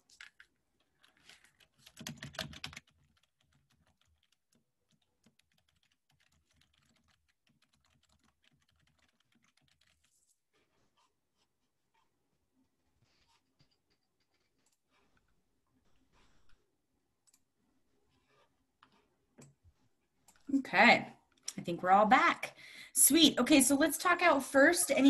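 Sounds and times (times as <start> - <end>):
computer keyboard typing: 0.0 - 10.3.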